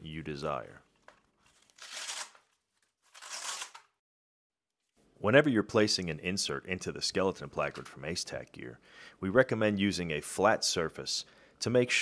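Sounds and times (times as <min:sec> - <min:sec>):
nylon placard rustling: 0:00.9 - 0:03.9.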